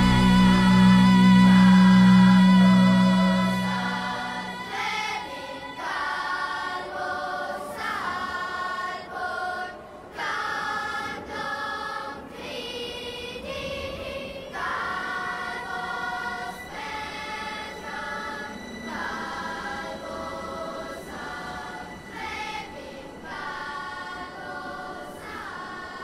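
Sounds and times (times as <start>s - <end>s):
loud low held note: 0.0s - 5.6s
choir singing held chords: 0.0s - 26.0s.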